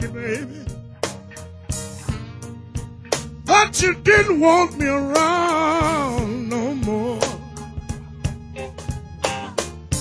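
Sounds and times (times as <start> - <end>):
live band playing: 0.0 - 10.0
man singing long note with vibrato: 3.5 - 7.4.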